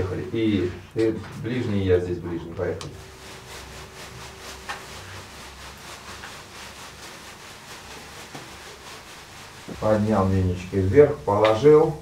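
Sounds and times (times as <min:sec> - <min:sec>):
leafy brooms swishing and patting: 0:00.0 - 0:12.0
leaves rustling: 0:02.9 - 0:11.4.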